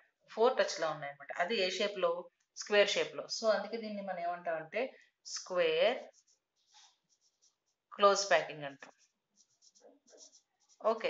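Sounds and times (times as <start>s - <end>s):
marker pen writing: 5.5s - 11.0s.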